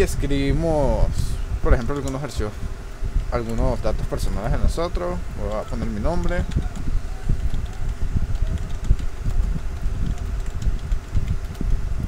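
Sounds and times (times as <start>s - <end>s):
low rumble of microphone noise: 0.0s - 12.0s
keyboard key clicks: 6.4s - 11.8s.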